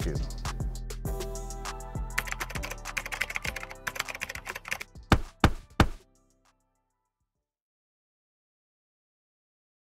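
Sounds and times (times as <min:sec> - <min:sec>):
music: 0:00.0 - 0:07.5
rapid typing-like clicks: 0:02.2 - 0:04.9.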